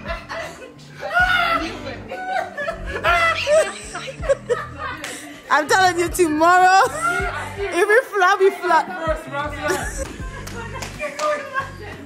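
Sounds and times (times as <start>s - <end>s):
background music: 0.0s - 12.0s
people laughing: 0.0s - 12.0s.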